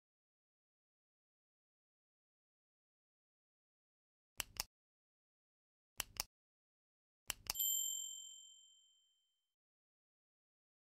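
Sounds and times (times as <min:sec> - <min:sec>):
mouse clicks: 0:04.4 - 0:04.7, 0:06.0 - 0:06.3, 0:07.3 - 0:07.6
bell-like ding: 0:07.6 - 0:09.3.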